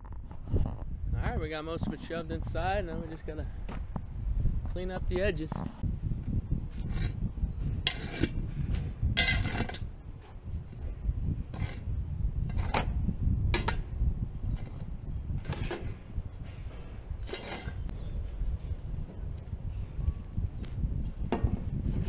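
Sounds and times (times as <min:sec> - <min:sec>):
low rumble: 0:00.0 - 0:22.0.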